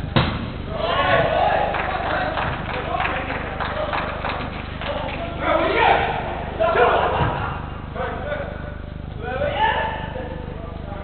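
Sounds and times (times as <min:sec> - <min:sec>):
football being kicked thud: 0:00.0 - 0:01.3
footballers shouting: 0:00.7 - 0:10.6.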